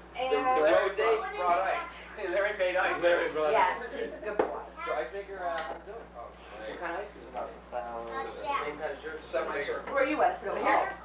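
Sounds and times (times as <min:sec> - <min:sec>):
indistinct conversation: 0:00.0 - 0:11.0.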